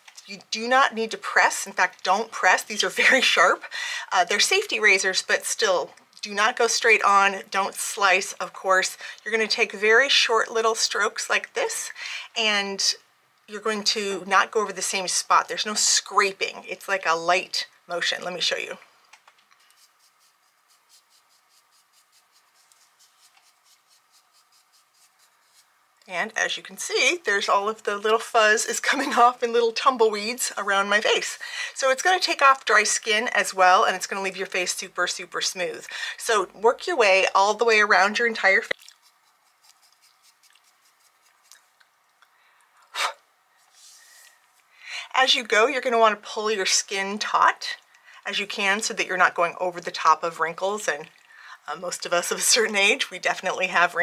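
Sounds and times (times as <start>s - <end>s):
razor scratching across skin: 19.6s - 25.7s, 38.6s - 41.7s.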